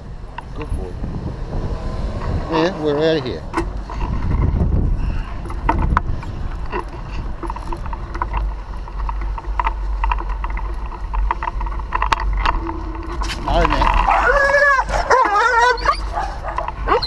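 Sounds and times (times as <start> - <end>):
wind rumbling on microphone: 0.0 - 17.0
light regular ticks: 5.4 - 17.0.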